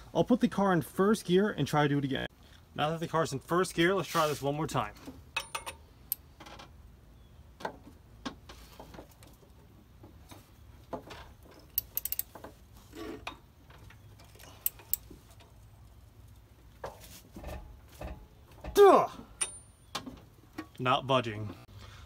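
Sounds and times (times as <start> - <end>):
ratchet clicking: 11.7 - 12.3.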